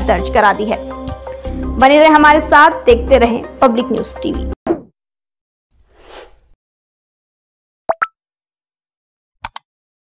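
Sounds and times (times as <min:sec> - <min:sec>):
pop sound effects: 0:07.9 - 0:08.1.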